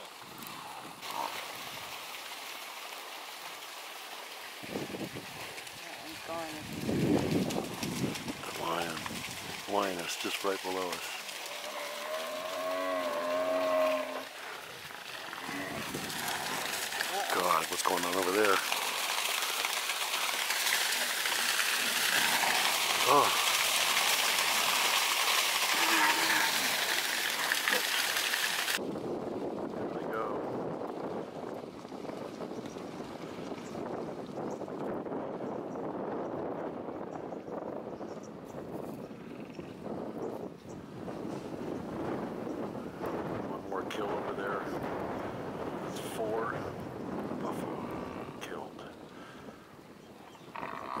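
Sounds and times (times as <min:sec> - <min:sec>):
hooves splashing through water: 0:00.0 - 0:35.0
hooves pounding dry ground: 0:00.2 - 0:35.5.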